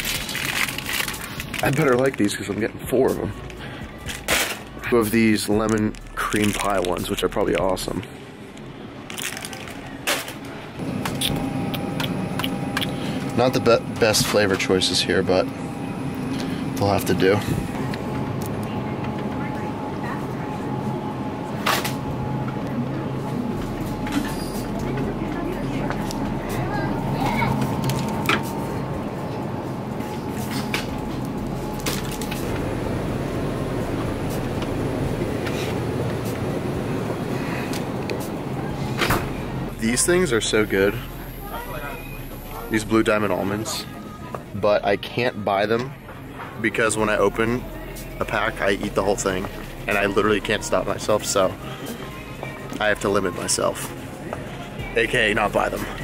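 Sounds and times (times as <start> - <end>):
plastic wrappers crinkling: 0.0 - 2.7, 5.4 - 7.9, 9.1 - 10.6
steady hum with whining tones: 0.0 - 56.0.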